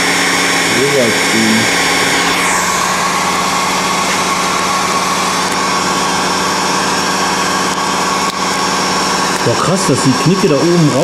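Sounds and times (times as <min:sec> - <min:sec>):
heat gun fan whining: 0:00.0 - 0:11.0.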